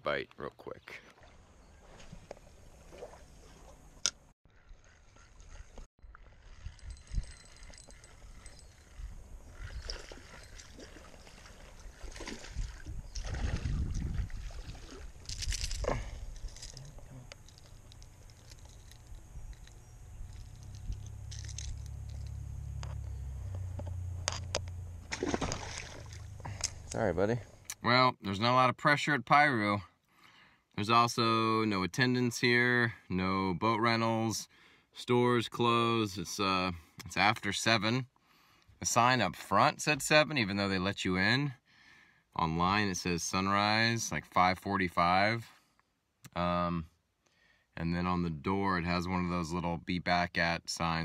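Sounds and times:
water splashing and sloshing: 0.9 - 8.6, 9.4 - 16.8, 24.3 - 27.0.

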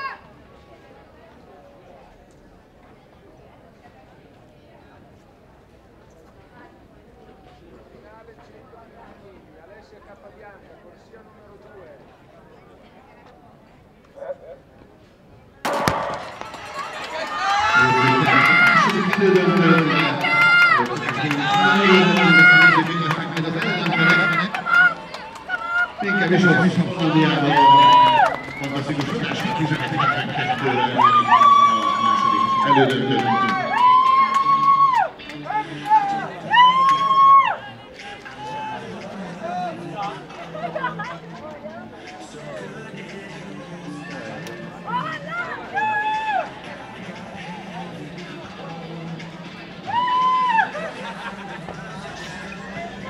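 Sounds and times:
starting gun crack over loudspeakers: 15.7 - 35.1
crowd shouting and cheering: 15.7 - 53.0.

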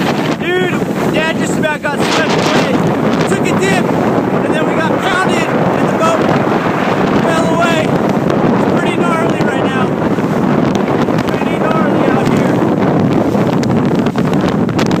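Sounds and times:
strong wind buffeting microphone: 0.0 - 15.0.

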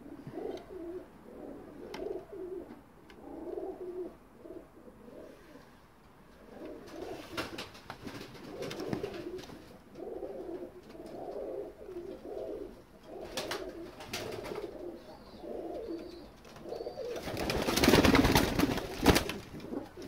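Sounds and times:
pigeons cooing: 0.0 - 20.0.

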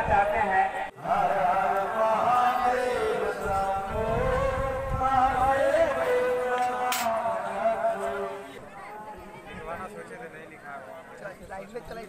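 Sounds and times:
mantra chanting: 0.0 - 8.6.

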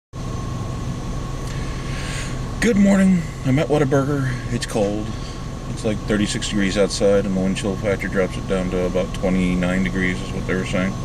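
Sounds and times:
car engine running: 0.2 - 11.0
heater fan blowing: 0.2 - 11.0.

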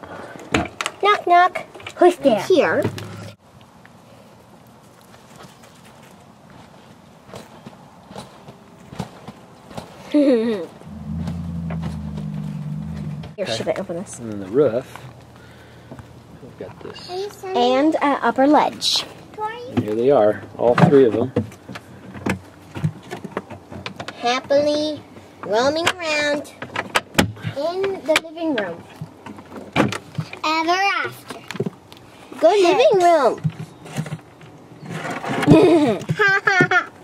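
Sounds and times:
low motor hum: 10.8 - 13.8.

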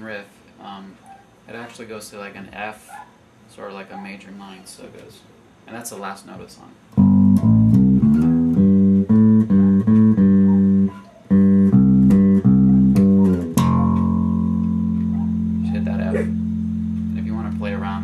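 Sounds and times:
electric bass guitar riff: 7.0 - 18.0.

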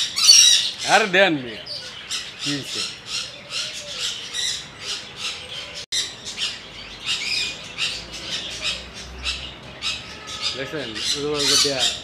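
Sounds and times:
aviary birds squawking and chattering: 0.0 - 12.0.

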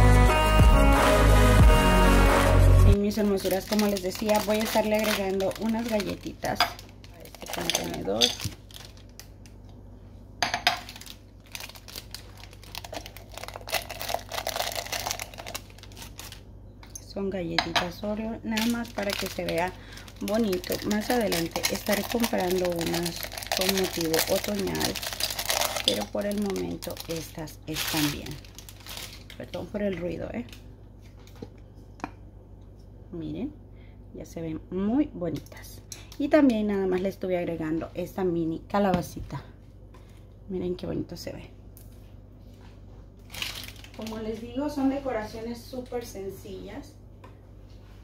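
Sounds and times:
cookies rattling into glass jar: 3.4 - 9.1, 10.6 - 16.4, 18.6 - 29.5.

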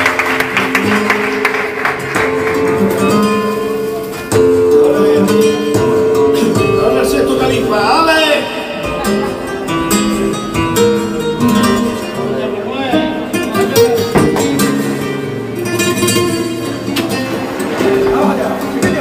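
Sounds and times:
acoustic flamenco guitar playing: 0.0 - 19.0
sharp percussive strikes: 13.6 - 15.2.

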